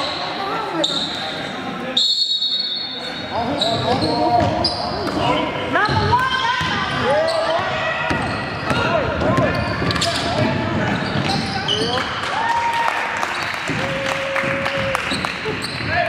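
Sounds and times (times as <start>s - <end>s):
sneakers squeaking: 0.0s - 12.3s, 14.5s - 16.0s
ball bouncing on hardwood court: 5.8s - 7.0s, 8.0s - 12.0s.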